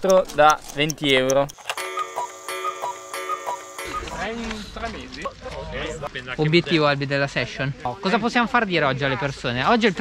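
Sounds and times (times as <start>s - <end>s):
clock ticking: 0.0s - 4.4s
held musical chord: 1.8s - 4.4s.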